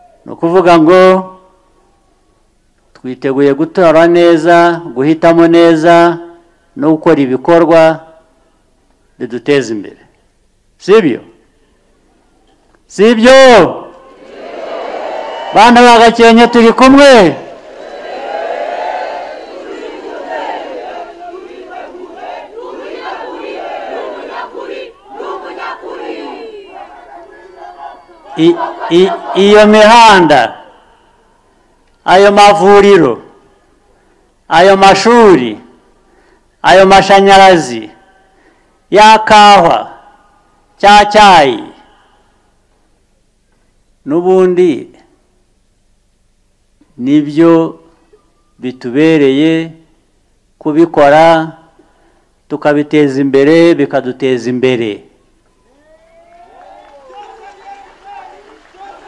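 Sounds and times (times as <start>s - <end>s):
man speaking into a microphone: 0.2s - 1.4s, 3.0s - 8.2s, 9.2s - 10.1s, 10.8s - 11.4s, 12.9s - 13.9s, 15.6s - 17.4s, 28.3s - 30.7s, 32.0s - 33.3s, 34.5s - 35.7s, 36.6s - 38.0s, 38.9s - 40.0s, 40.8s - 41.9s, 44.0s - 45.1s, 47.0s - 47.9s, 48.6s - 49.9s, 50.6s - 51.7s, 52.5s - 55.1s
man's amplified voice: 0.2s - 1.4s, 3.0s - 8.3s, 9.2s - 10.1s, 10.8s - 11.4s, 12.9s - 13.9s, 15.5s - 17.4s, 27.2s - 30.8s, 32.0s - 33.4s, 34.5s - 35.7s, 36.6s - 38.1s, 38.9s - 40.1s, 40.8s - 42.0s, 44.0s - 45.1s, 47.0s - 47.9s, 48.6s - 49.9s, 50.6s - 51.7s, 52.5s - 55.1s
crowd shouting and cheering: 14.1s - 30.5s, 55.6s - 59.0s.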